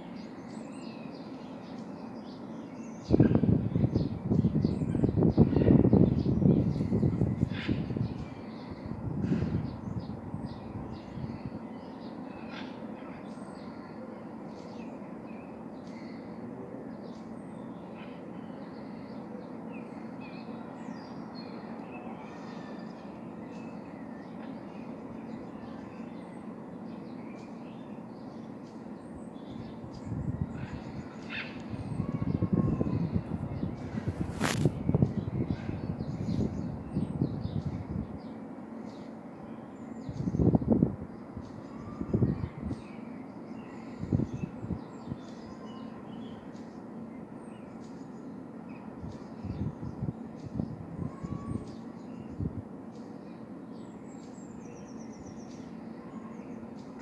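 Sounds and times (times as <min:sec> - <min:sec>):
steady background hiss: 0:00.0 - 0:57.0
bird chirps and calls: 0:00.1 - 0:57.0.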